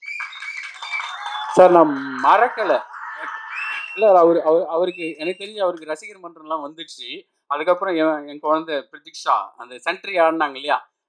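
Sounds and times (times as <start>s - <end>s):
busy background din: 0.7s - 5.5s.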